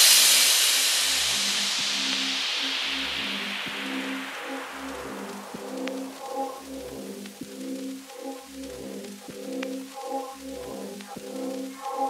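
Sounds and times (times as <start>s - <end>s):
white-noise swell: 0.0s - 12.0s
low synth bassline: 1.2s - 11.8s.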